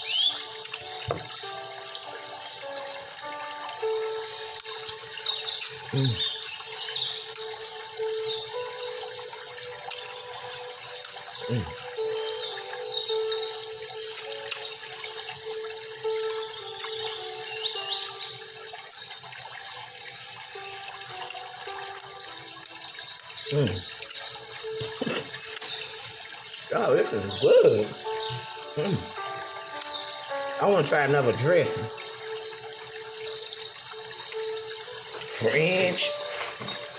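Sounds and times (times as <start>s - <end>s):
birds chirping: 0.0s - 36.9s
soft slow background music: 0.0s - 36.9s.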